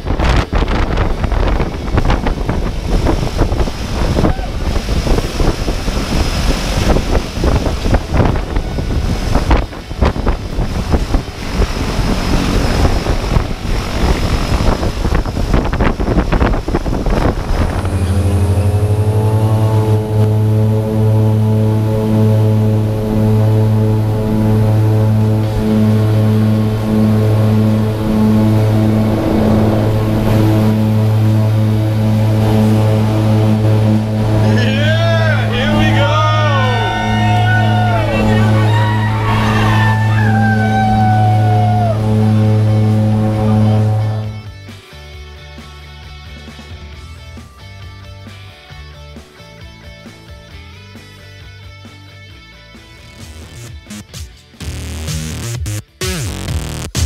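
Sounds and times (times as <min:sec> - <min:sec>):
wind on microphone: 0:00.0 - 0:44.5
aircraft noise: 0:00.0 - 0:44.7
propeller plane low drone: 0:00.0 - 0:55.0.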